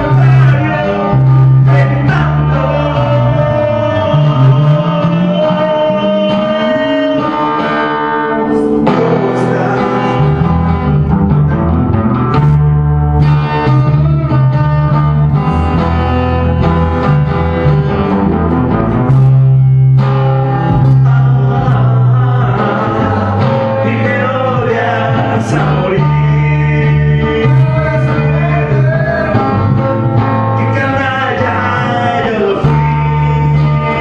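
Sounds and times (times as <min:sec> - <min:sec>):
acoustic guitar: 0:00.0 - 0:34.0
electric bass: 0:00.0 - 0:34.0.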